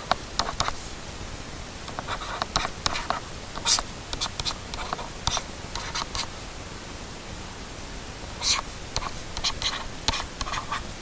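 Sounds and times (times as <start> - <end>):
stylus scratching on tablet: 0.4 - 0.8, 1.9 - 6.3, 8.4 - 10.9.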